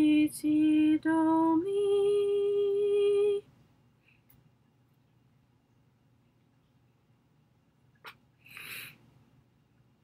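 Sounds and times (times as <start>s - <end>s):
woman singing unaccompanied: 0.0s - 3.5s.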